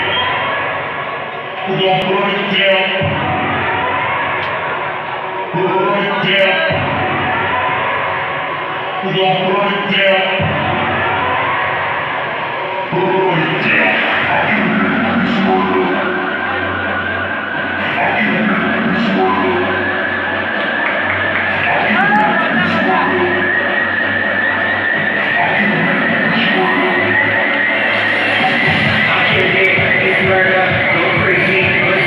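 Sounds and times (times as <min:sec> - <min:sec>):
loud rock song with vocals: 0:09.7 - 0:32.0.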